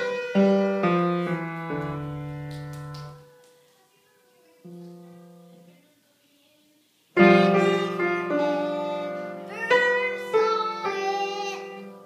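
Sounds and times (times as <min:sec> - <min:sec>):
grand piano notes: 0:00.0 - 0:03.7.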